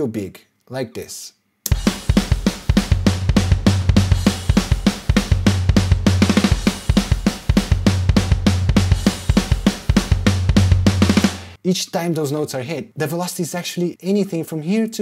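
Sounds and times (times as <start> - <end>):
rock drum kit playing: 1.7 - 11.6.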